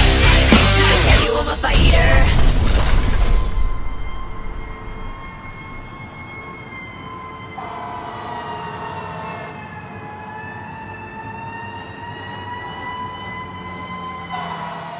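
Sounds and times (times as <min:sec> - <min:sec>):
background rumble: 0:00.4 - 0:06.2
emergency siren wailing: 0:03.2 - 0:14.9
lower siren tone: 0:03.2 - 0:14.9.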